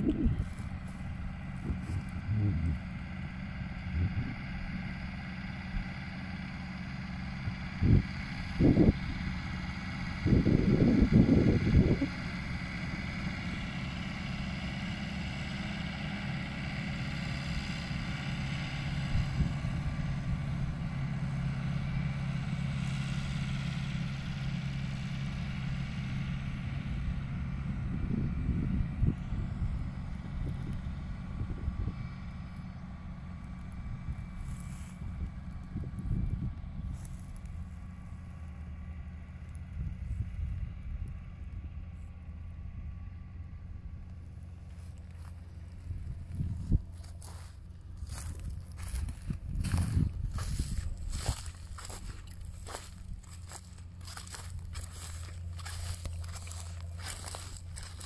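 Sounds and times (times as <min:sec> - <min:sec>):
wind buffeting microphone: 0:00.0 - 0:03.2, 0:03.8 - 0:04.7, 0:07.4 - 0:09.3, 0:10.1 - 0:13.0, 0:26.9 - 0:32.1, 0:33.7 - 0:37.7, 0:45.7 - 0:58.0
tractor diesel engine running: 0:00.0 - 0:58.0.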